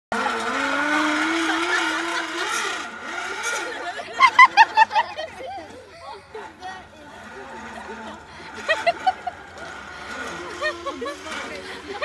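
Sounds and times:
zip line trolley whine: 0:00.1 - 0:12.0.

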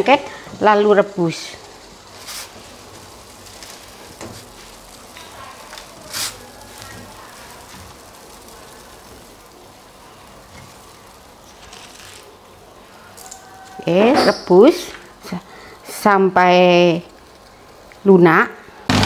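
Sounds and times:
water boiling in a pot: 0:00.0 - 0:19.0.

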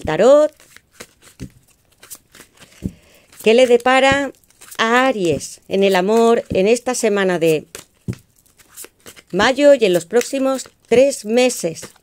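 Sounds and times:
cards being shuffled: 0:00.1 - 0:12.0.

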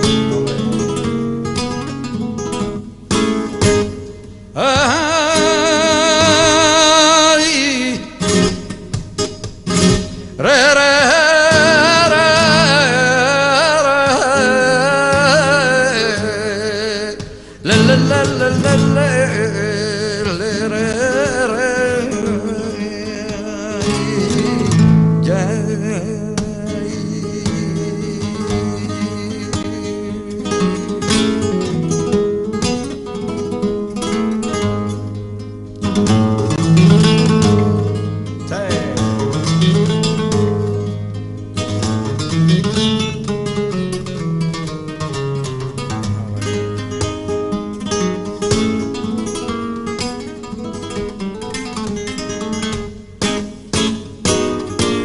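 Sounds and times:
flamenco acoustic guitar: 0:00.0 - 0:55.0.

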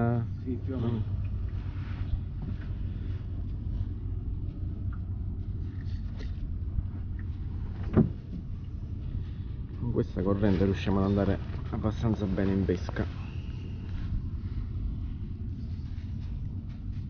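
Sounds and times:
boat engine running: 0:00.0 - 0:17.0.

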